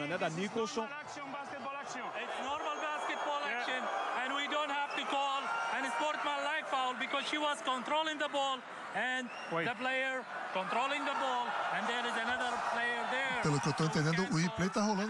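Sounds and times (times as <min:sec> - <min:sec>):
referees talking over microphone: 0:00.0 - 0:15.0.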